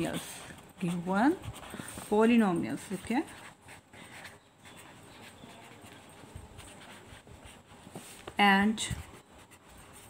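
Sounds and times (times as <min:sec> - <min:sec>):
pen scratching on paper: 0:00.0 - 0:10.0.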